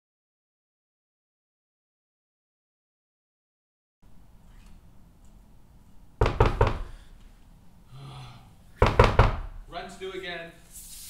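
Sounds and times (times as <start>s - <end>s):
knocking on a door: 6.2s - 7.0s, 8.8s - 9.6s.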